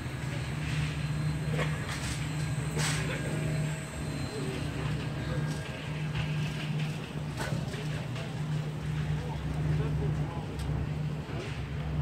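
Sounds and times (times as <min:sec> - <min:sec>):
low mechanical hum with rumble: 0:00.0 - 0:12.0.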